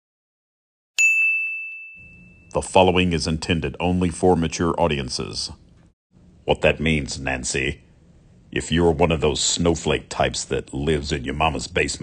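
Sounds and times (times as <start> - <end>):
bright chime ding: 1.0 - 2.6.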